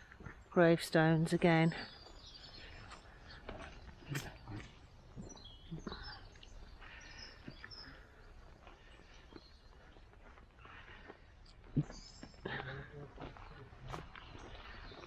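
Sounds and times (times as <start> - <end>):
distant birds chirping: 0.0 - 15.0.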